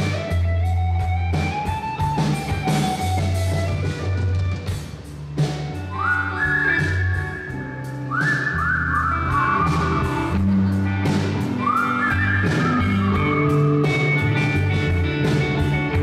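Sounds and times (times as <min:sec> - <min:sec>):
bass guitar: 0:00.0 - 0:16.0
drum kit with cymbals: 0:00.0 - 0:16.0
electric guitar: 0:00.0 - 0:16.0
sliding lead guitar notes: 0:00.0 - 0:16.0.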